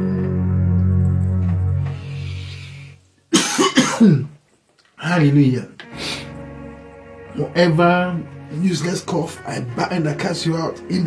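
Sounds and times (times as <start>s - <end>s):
low chord of background music: 0.0s - 4.0s, 5.2s - 11.0s
man coughing and clearing throat: 3.3s - 4.4s.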